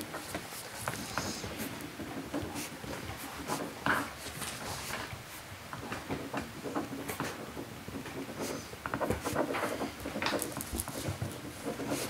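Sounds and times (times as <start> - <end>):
paper rustling: 8.4 - 12.0.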